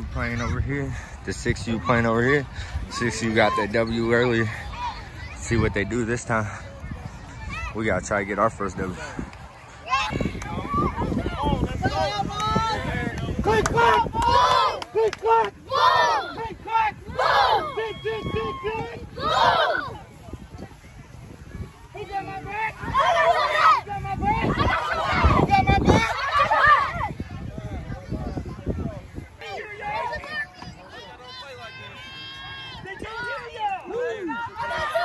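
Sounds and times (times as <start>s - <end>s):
voices shouting and cheering: 0.0s - 35.0s
children shouting a chant: 13.8s - 20.1s, 22.2s - 27.1s, 34.2s - 35.0s.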